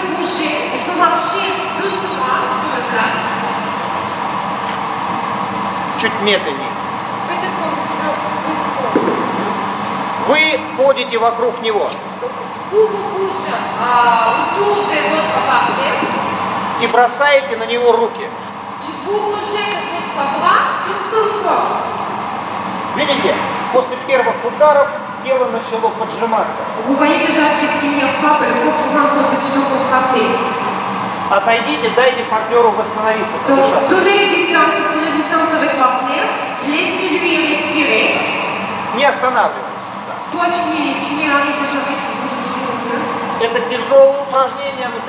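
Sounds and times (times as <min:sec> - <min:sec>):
room noise hum: 0:00.0 - 0:45.0
man's voice: 0:10.2 - 0:12.4
person talking: 0:10.2 - 0:16.2, 0:31.3 - 0:38.3.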